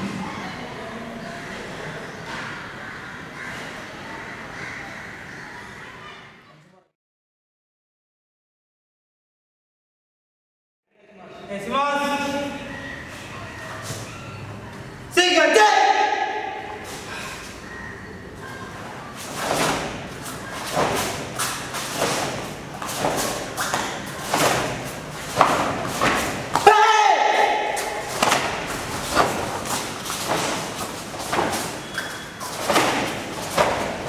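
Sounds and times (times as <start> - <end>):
person shouting: 15.2 - 16.6, 26.6 - 28.0
feet stamping on mats: 19.3 - 26.7, 27.8 - 34.0.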